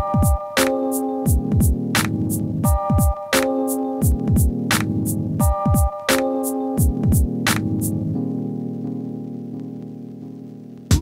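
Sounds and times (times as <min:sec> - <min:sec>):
snare and hi-hat hits: 0:00.0 - 0:08.0
deep kick drums: 0:01.3 - 0:01.8, 0:04.0 - 0:04.6.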